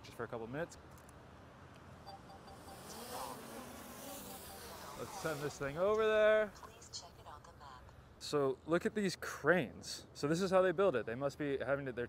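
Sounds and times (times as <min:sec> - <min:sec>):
drone propellers buzzing: 0:02.1 - 0:06.1.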